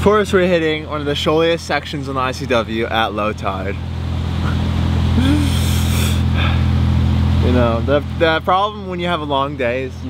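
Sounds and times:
diesel engine droning: 0.0 - 10.0.

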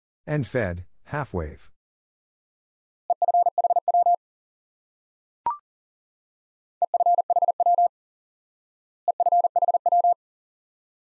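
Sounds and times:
morse code beeps: 3.1 - 4.2, 6.8 - 7.9, 9.1 - 10.2.

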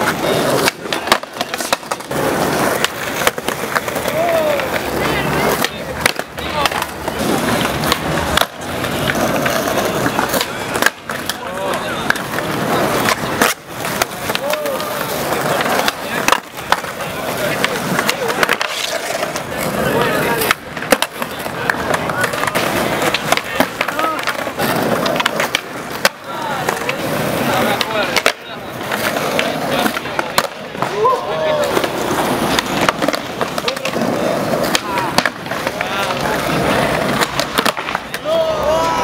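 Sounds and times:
crowd chatter: 0.0 - 39.0
skateboard clacks: 0.0 - 39.0
skateboard wheels rolling on concrete: 0.0 - 39.0.

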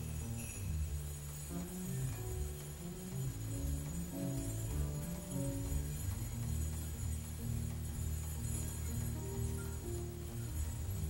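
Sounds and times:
double bass plucked notes: 0.0 - 11.0.

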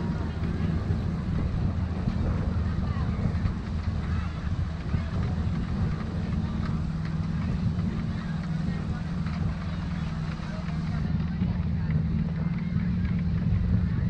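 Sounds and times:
people chattering: 0.0 - 14.0
wind buffeting microphone: 0.0 - 14.0.

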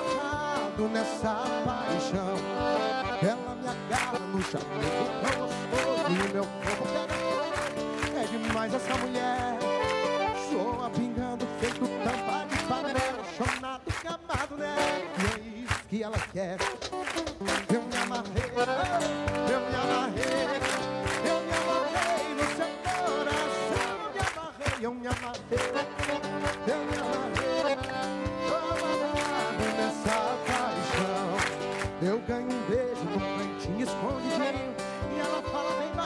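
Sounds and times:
piano accordion melody: 0.0 - 15.6, 17.0 - 36.0
cajon beat: 0.0 - 36.0
strummed acoustic guitar: 0.0 - 36.0.

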